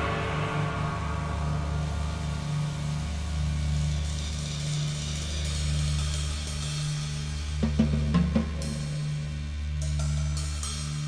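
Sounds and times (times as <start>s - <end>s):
sharp drum kit hits: 0.0s - 2.8s
cymbal shimmer: 0.0s - 7.6s.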